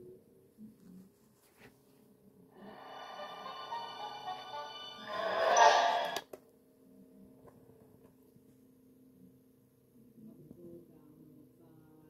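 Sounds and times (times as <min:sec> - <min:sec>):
music from dvd player: 0:02.6 - 0:06.2.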